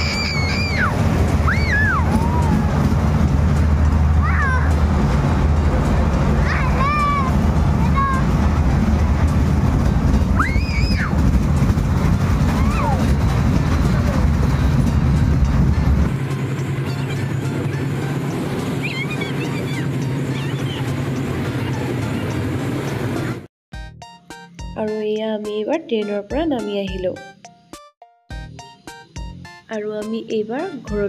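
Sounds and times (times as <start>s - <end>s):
kiddie train ride rumbling: 0.0s - 23.5s
fairground music: 0.8s - 31.0s.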